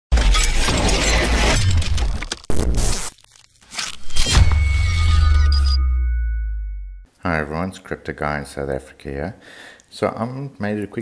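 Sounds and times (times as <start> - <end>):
glass shattering: 0.1 - 6.4
sudden crash: 4.0 - 6.9.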